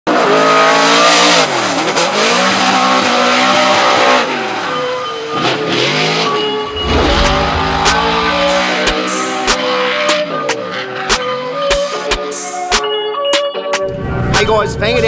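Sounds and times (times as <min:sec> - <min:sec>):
car engine at high revs: 0:00.1 - 0:12.2.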